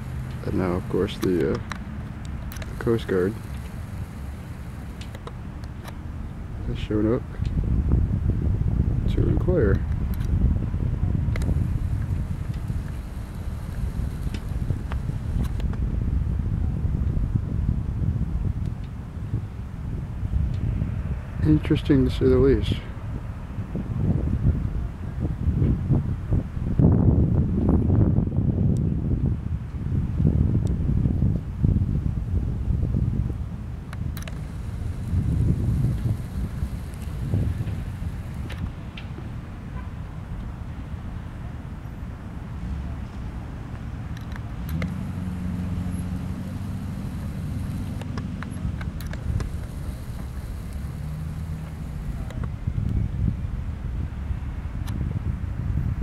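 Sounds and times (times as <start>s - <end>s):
outboard motors humming: 0.0s - 6.7s, 11.4s - 15.8s, 34.0s - 38.9s, 43.4s - 52.7s
wind buffeting microphone: 0.0s - 41.0s, 42.9s - 56.0s.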